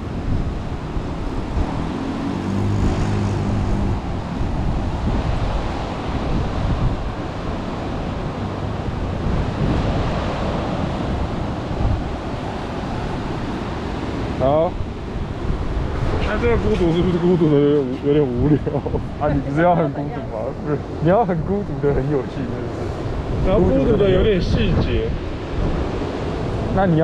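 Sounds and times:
sea waves washing: 0.0s - 27.0s
wind buffeting microphone: 0.0s - 27.0s.

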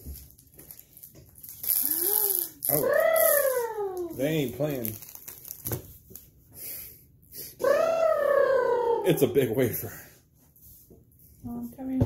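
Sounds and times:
plastic wrapper crinkling: 0.0s - 6.3s
high-pitched vocal sound: 1.8s - 4.2s, 7.6s - 9.4s.

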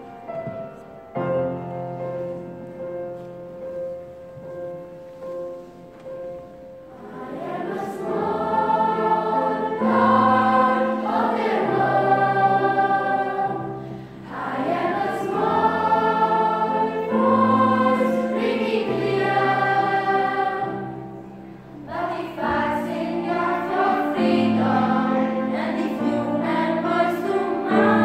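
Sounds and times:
youth choir singing: 6.9s - 28.0s.

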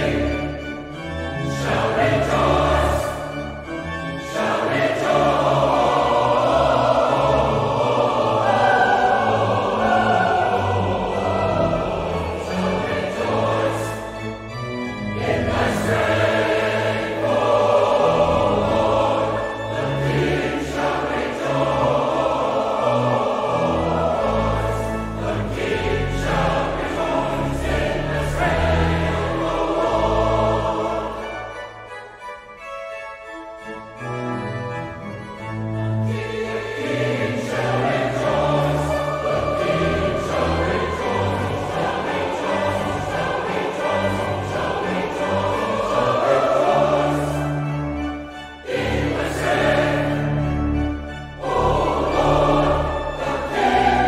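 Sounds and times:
choir singing: 0.0s - 32.7s, 33.6s - 54.0s
church organ bass notes: 0.0s - 54.0s.

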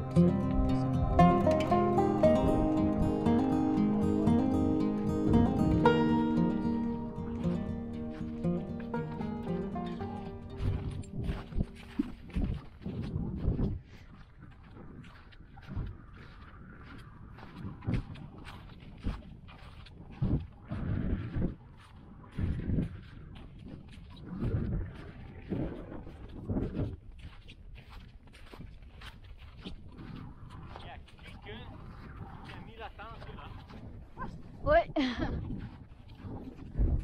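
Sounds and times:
footsteps crunching in snow: 0.0s - 34.6s, 35.2s - 37.0s
wind noise on microphone: 0.0s - 37.0s.

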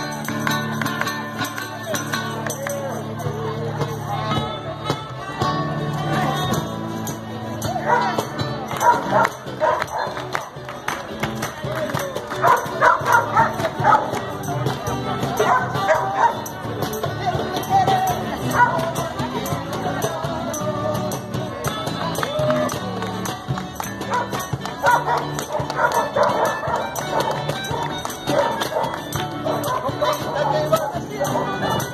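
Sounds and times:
acoustic guitars strumming: 0.0s - 31.9s
hand drum beats: 0.0s - 31.9s
music playing: 0.0s - 31.9s
dog barking: 7.8s - 8.1s, 8.8s - 10.2s, 12.4s - 14.0s, 24.8s - 27.3s, 28.3s - 28.9s.

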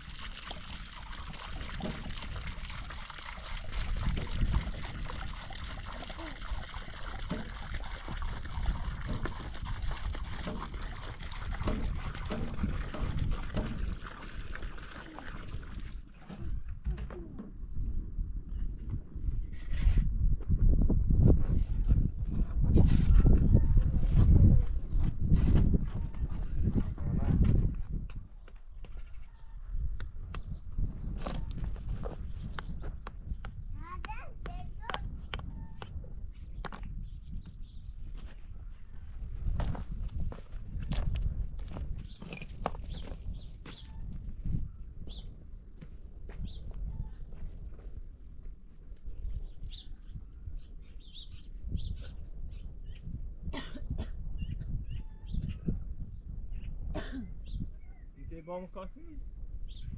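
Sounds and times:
outdoor noise: 0.0s - 59.9s.

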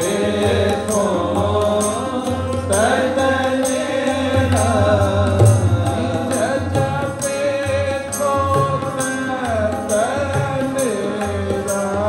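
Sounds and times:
harmonium chords: 0.0s - 12.0s
person singing a hymn: 0.0s - 12.0s
tabla strokes: 0.0s - 12.0s.

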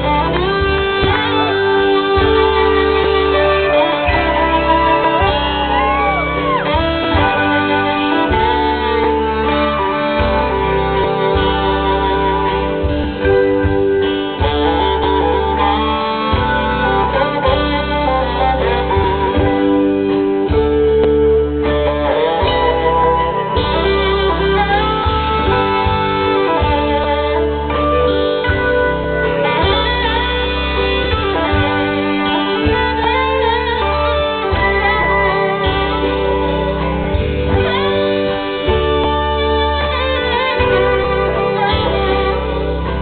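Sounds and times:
bass line: 0.0s - 43.0s
drums: 0.0s - 43.0s
electric guitar: 0.0s - 43.0s
rock band playing loudly: 0.0s - 43.0s
saxophone bending notes: 0.0s - 43.0s.

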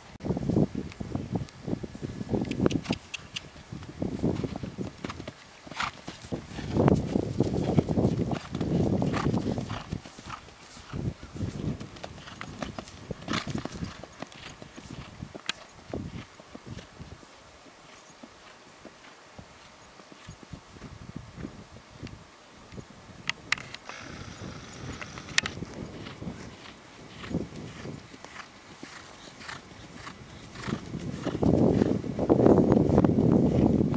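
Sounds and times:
horse hoofbeats on dirt: 2.5s - 21.0s, 23.8s - 33.9s.

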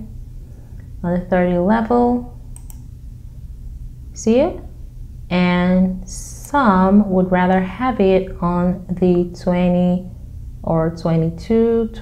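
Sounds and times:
low steady hum: 0.0s - 12.0s
computer mouse clicks: 2.5s - 2.9s.

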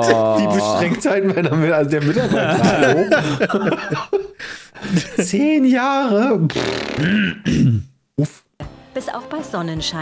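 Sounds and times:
narrator speaking: 0.0s - 3.0s
man laughing: 0.0s - 6.4s
rough throat sound: 6.5s - 8.5s
background music: 8.6s - 10.0s.

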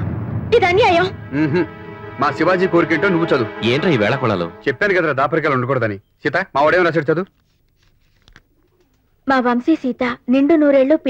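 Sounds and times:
woman speaking: 0.5s - 1.2s, 9.3s - 11.0s.

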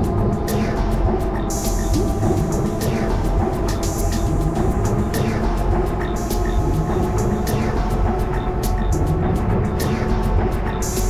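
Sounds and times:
low mechanical rumble: 0.0s - 10.8s
ambient electronic music: 0.0s - 11.0s
hissy high sweep: 0.0s - 11.0s.

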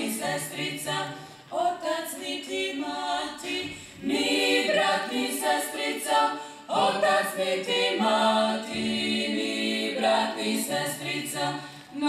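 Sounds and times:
women singing a cappella: 0.0s - 12.0s.

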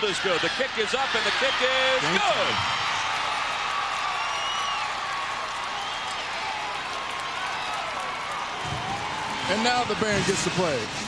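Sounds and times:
crowd cheering: 0.0s - 11.0s
high whistle-like cries: 4.1s - 5.1s.

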